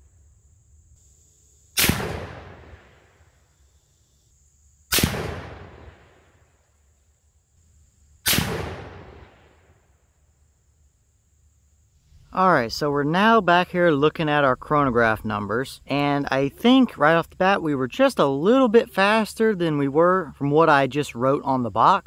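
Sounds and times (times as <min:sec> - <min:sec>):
rifle shots with echo: 0:01.8 - 0:03.2, 0:04.9 - 0:06.4, 0:08.2 - 0:09.6.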